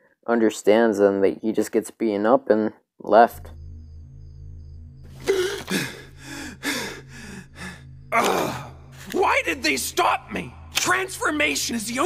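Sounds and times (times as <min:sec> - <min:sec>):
low steady hum: 0:03.2 - 0:12.0.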